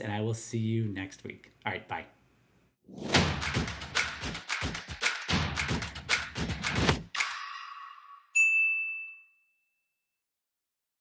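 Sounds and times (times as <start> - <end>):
notification bell ding: 8.4 - 9.8.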